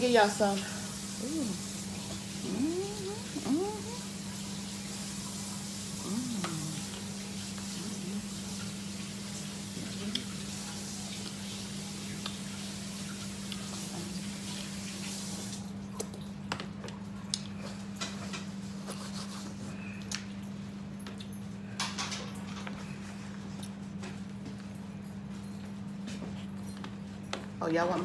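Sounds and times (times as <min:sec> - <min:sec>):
steady low hum: 0:00.0 - 0:04.4, 0:05.6 - 0:14.7.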